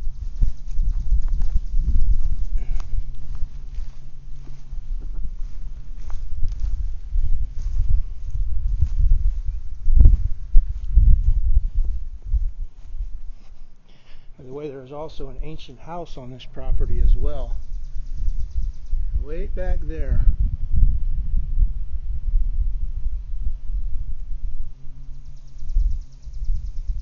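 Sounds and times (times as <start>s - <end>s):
footsteps on grass and dirt: 0.0s - 20.2s
faint steady hum: 0.0s - 27.0s
wind rumbling on microphone: 0.0s - 27.0s.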